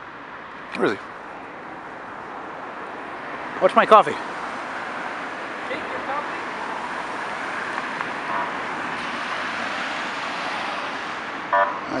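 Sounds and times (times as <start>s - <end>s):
city street traffic: 0.0s - 12.0s
car horn toot: 11.5s - 11.8s.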